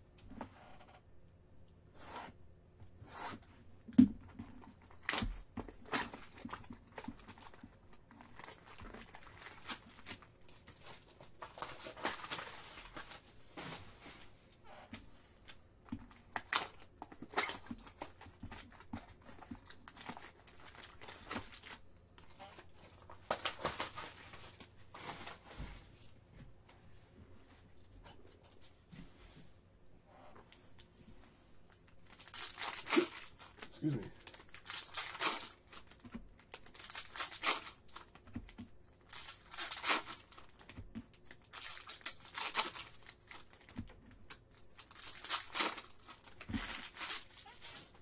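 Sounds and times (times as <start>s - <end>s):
plastic crinkling: 4.5s - 14.0s, 16.0s - 25.4s, 31.7s - 48.0s
card packs rustling: 4.5s - 14.4s, 15.4s - 25.4s, 31.7s - 48.0s
plastic wrap tearing: 4.8s - 13.2s, 19.7s - 24.7s, 32.0s - 38.2s, 39.0s - 48.0s
knife cutting shrink-wrap: 44.9s - 47.8s.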